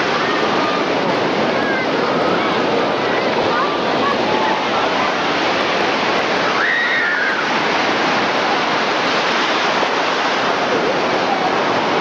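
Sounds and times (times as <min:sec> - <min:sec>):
faint voices: 0:00.0 - 0:12.0
ocean surf washing in: 0:00.0 - 0:12.0.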